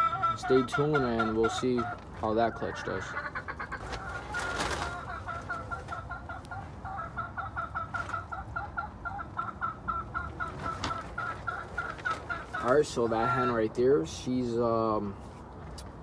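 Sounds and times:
hen clucking rapidly: 0.0 - 14.0.

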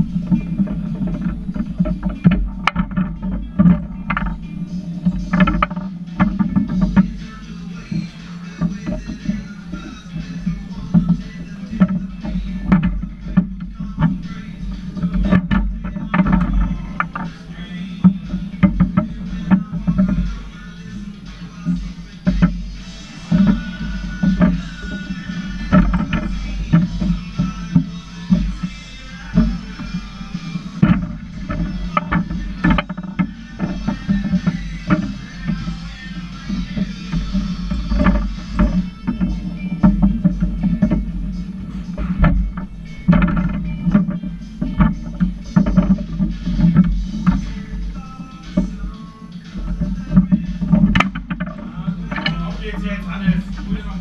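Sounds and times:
background music: 0.0 - 54.0
foosball rods clacking: 0.0 - 54.0.

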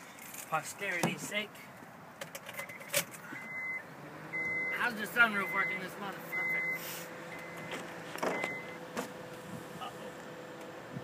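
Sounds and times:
car warning chime beeping: 2.6 - 8.8.

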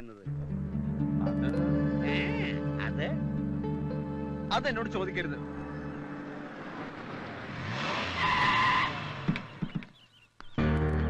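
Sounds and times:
car engine revving: 1.5 - 9.9
tyres squealing: 5.3 - 10.0.

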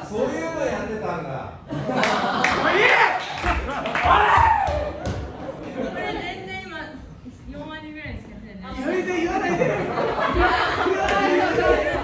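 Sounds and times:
overlapping chatter of people: 5.2 - 12.0.

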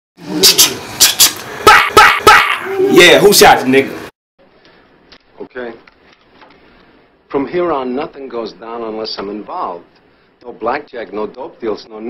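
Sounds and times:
dog barking: 1.6 - 2.6.

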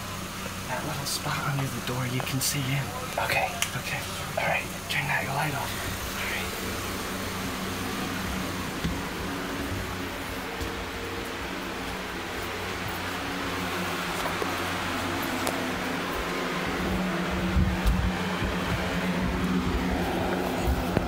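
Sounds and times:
low bumps and rumbles: 0.0 - 21.0
noisy hiss: 0.0 - 21.0
steady low hum: 0.0 - 21.0.

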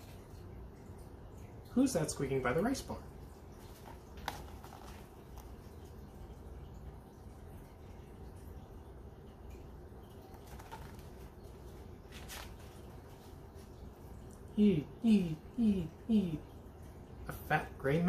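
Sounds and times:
room hum: 0.0 - 18.0
book pages rustling and tapping: 3.7 - 5.6, 10.3 - 11.4, 12.1 - 13.0.

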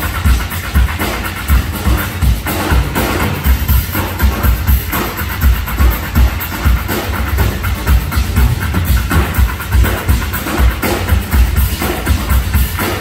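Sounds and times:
fast heavy drum beat: 0.0 - 13.0
live band music: 0.0 - 13.0.

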